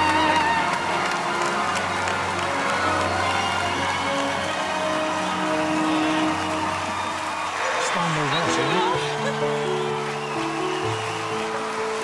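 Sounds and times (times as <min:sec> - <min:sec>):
audience applauding and cheering: 0:00.0 - 0:12.0
music holding sustained chords: 0:00.0 - 0:12.0.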